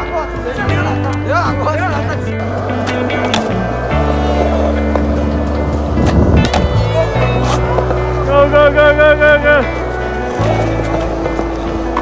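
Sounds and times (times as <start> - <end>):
background music with bass line: 0.0 - 12.0
skateboard wheels rolling: 1.7 - 12.0
skateboard clacking on landing: 2.5 - 8.1.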